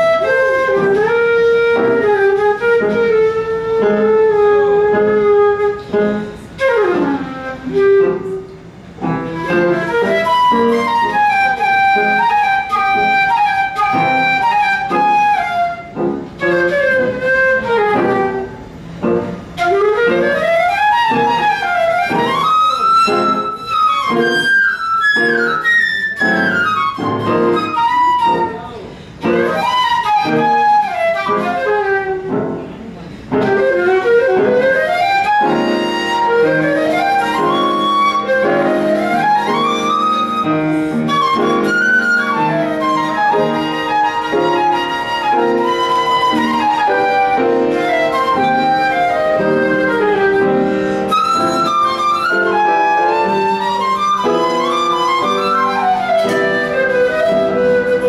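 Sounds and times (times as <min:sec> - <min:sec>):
flute playing jazz runs: 0:00.0 - 0:58.0
piano accompaniment: 0:00.0 - 0:58.0.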